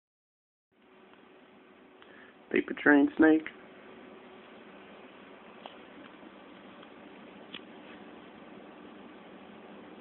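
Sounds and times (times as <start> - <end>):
microphone hiss: 0.8 - 10.0.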